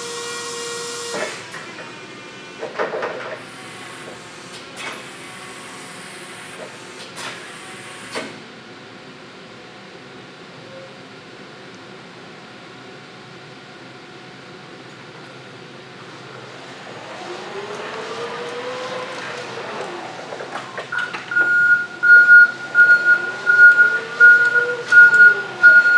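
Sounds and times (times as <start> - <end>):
electric motor whine: 16.3 - 20.6.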